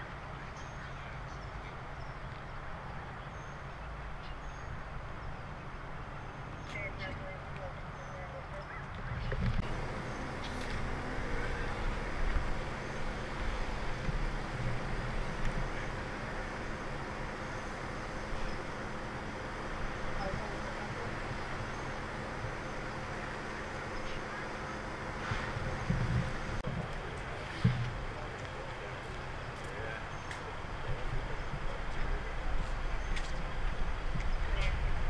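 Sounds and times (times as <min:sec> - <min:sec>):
low rumble of motor vehicles: 0:00.0 - 0:35.0
faint voices: 0:06.6 - 0:35.0
low bumps: 0:08.8 - 0:35.0.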